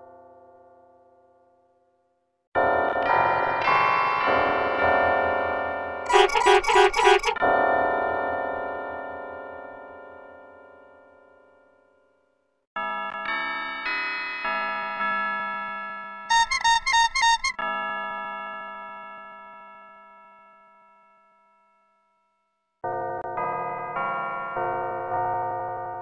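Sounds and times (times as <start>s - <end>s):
keyboard logo jingle: 6.1s - 7.4s.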